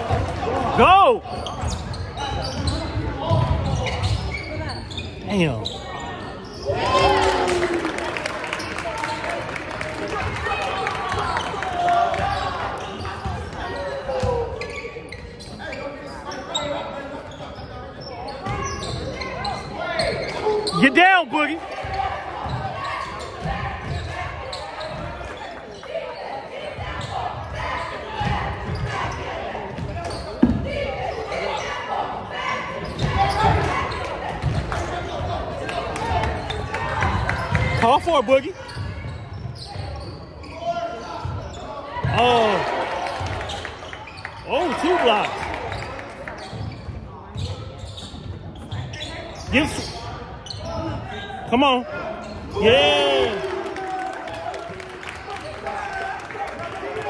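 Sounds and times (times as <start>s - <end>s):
crowd chatter in large hall: 0.0s - 57.0s
sneakers squeaking: 1.3s - 7.0s, 10.2s - 53.4s.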